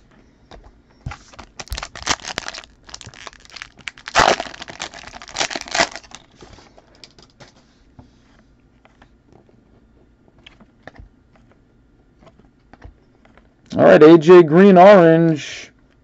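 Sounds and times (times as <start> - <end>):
foil wrapper crinkling and tearing: 1.3 - 6.4.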